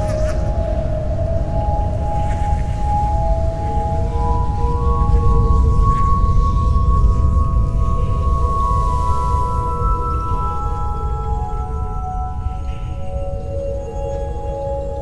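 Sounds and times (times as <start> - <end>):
low rumbling drone: 0.0 - 14.4.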